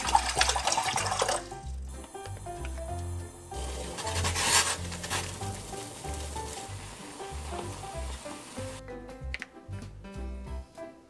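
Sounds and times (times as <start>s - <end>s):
water boiling in a saucepan: 0.0s - 8.8s
background music with bass line: 0.0s - 11.0s.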